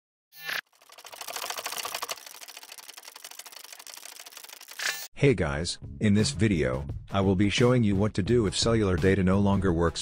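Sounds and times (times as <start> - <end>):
rapid mechanical clicks: 0.6 - 5.1.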